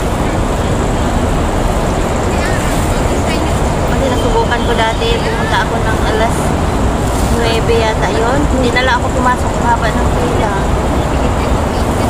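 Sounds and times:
faint voices: 0:00.0 - 0:12.0
traffic rumble: 0:00.0 - 0:12.0.

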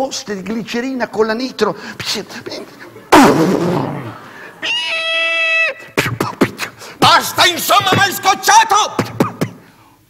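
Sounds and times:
man making explosion sound: 0:03.1 - 0:04.2
man making high squeal: 0:04.6 - 0:06.4.

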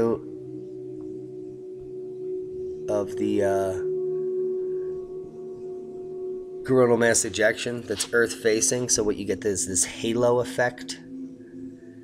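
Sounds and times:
steady drone tone: 0:00.0 - 0:12.0.

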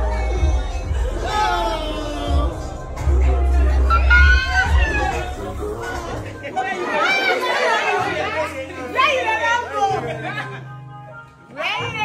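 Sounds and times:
low background music: 0:00.0 - 0:12.0
women chattering and calling out: 0:03.6 - 0:12.0.

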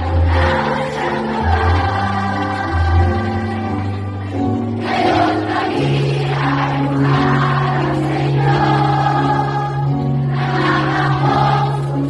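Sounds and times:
children's choir singing: 0:00.0 - 0:12.0
music accompaniment with bass: 0:00.0 - 0:12.0.

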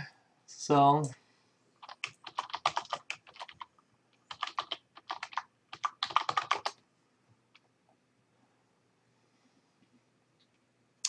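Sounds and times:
typing on computer keyboard: 0:01.8 - 0:03.7, 0:04.3 - 0:06.8.

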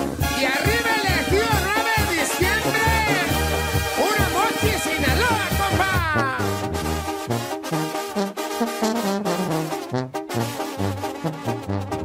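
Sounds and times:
brass band music: 0:00.0 - 0:12.0.

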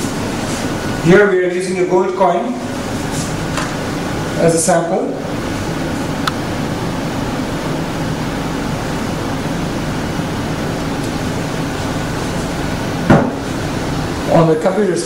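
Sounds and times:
ventilation fan hum and hiss: 0:00.0 - 0:15.0
loud thump: 0:13.1 - 0:13.4.

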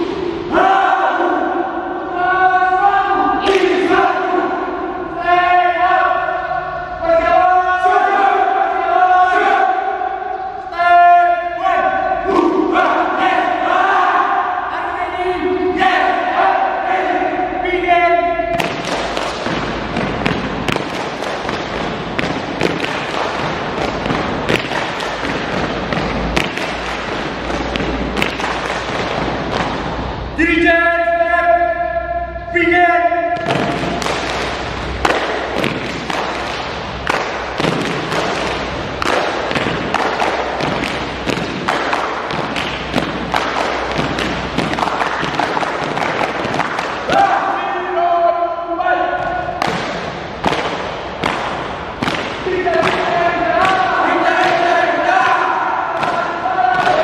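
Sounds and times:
boys chanting in unison: 0:00.0 - 0:18.3, 0:52.4 - 0:57.0
dense noise with sharp taps: 0:18.5 - 0:30.4, 0:33.4 - 0:47.4, 0:49.2 - 0:57.0.

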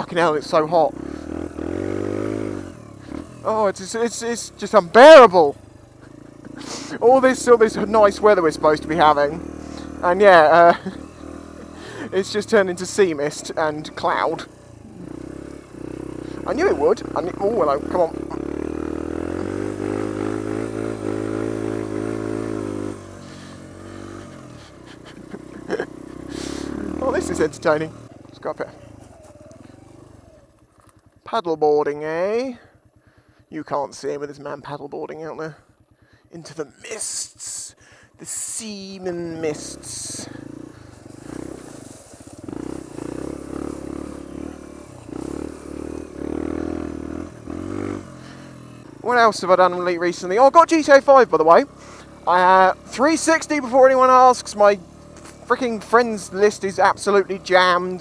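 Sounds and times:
motorcycle engine running: 0:00.0 - 0:58.0.

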